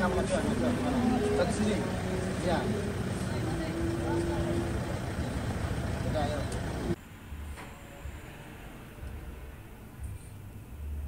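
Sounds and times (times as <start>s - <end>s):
people talking: 0.0s - 7.0s
low vehicle rumble: 0.0s - 11.0s.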